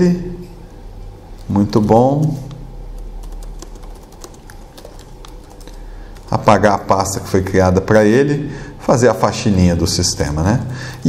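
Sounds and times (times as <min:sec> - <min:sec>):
computer keyboard typing: 0:01.4 - 0:06.6.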